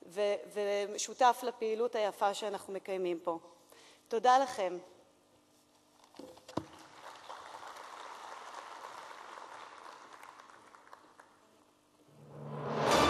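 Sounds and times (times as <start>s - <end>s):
audience applause: 6.7s - 11.5s.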